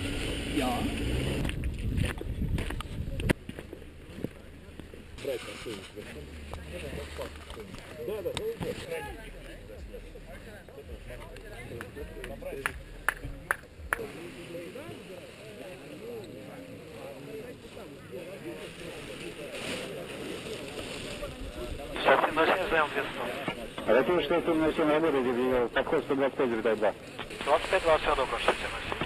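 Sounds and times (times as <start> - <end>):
people chattering: 0.0 - 29.0
wind rumble on microphone: 0.2 - 3.6.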